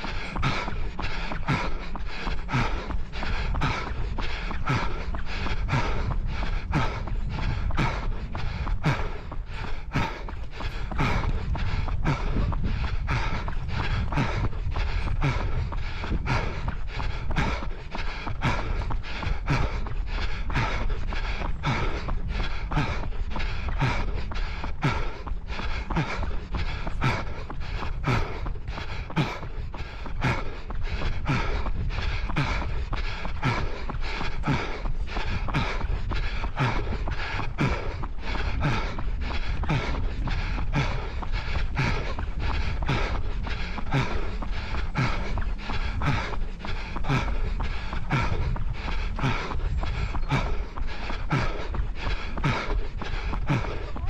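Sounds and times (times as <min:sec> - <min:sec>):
man breathing: 0:00.0 - 0:54.0
runner's footfalls: 0:00.0 - 0:54.0.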